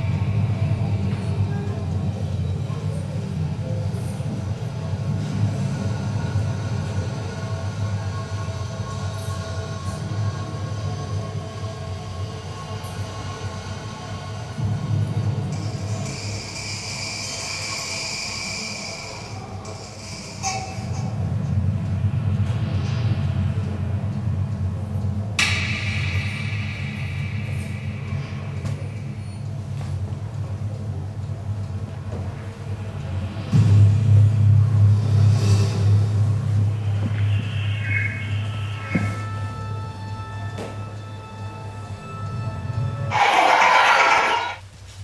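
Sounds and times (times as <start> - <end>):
low mechanical rumble: 0.0 - 45.0
sudden bright sound: 33.6 - 42.5
high hissing stretch: 35.0 - 41.6, 43.1 - 44.6.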